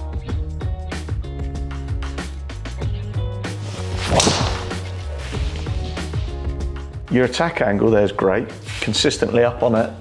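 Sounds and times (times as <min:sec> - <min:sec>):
background music: 0:00.0 - 0:10.0
golf club swing whoosh: 0:03.5 - 0:06.5.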